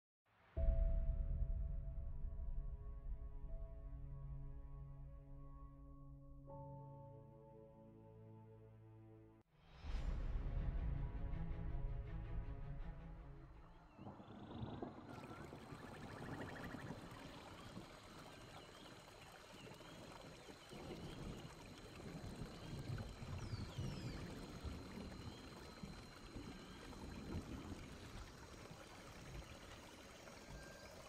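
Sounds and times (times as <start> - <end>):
running water: 14.3 - 31.0.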